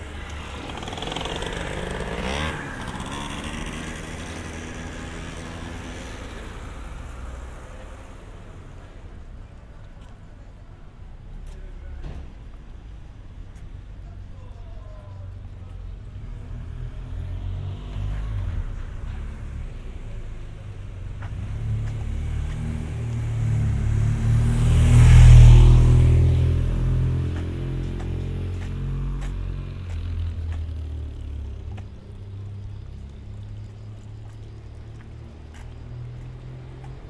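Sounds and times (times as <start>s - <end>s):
motorcycle passing by: 0.0s - 8.5s, 16.1s - 37.0s.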